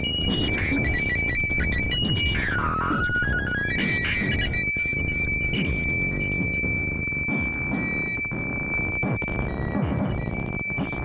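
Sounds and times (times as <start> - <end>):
noisy electronic music: 0.0 - 11.0.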